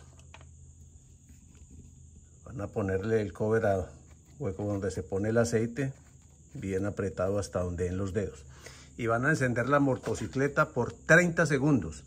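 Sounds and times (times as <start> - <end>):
insects chirring: 0.0 - 12.0.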